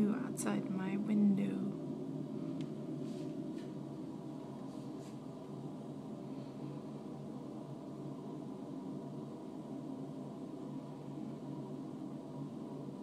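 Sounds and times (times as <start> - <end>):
low hum and hiss: 0.0 - 13.0.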